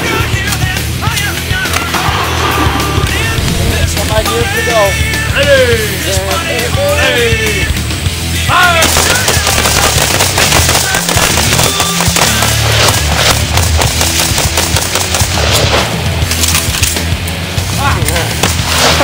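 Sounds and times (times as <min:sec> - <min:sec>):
heavy rock music: 0:00.0 - 0:19.0
rapid gunfire volley: 0:08.6 - 0:16.1, 0:18.2 - 0:19.0.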